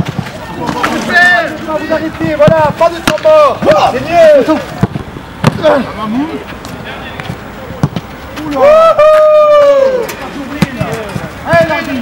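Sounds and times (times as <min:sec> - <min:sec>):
faint outdoor background: 0:00.0 - 0:12.0
football being kicked thud: 0:04.8 - 0:05.7.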